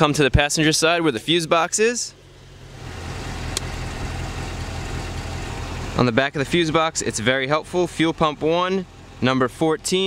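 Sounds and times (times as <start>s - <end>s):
car engine idling: 0.0s - 10.0s
sharp click: 3.5s - 3.7s.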